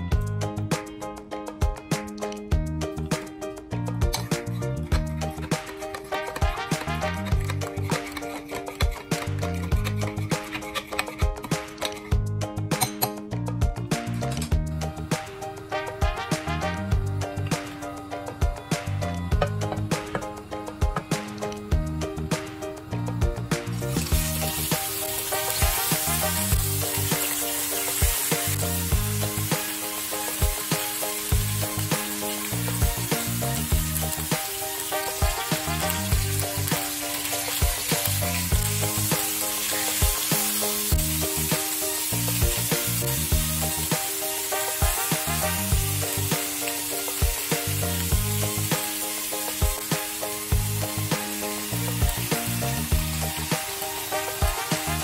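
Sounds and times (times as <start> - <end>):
background music: 0.0 - 55.0
meat sizzling in hot oil: 4.0 - 12.3, 14.6 - 55.0.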